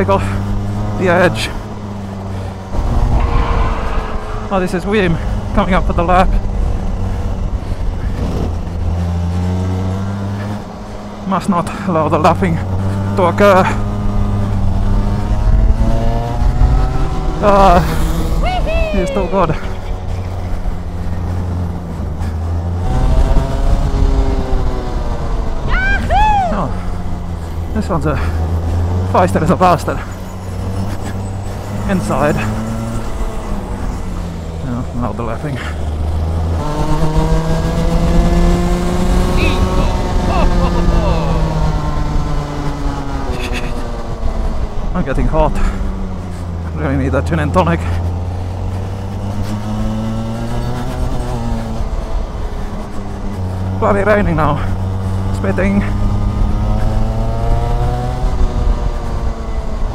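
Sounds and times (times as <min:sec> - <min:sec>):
go-kart engine running: 0:00.0 - 0:02.8, 0:06.0 - 0:59.9.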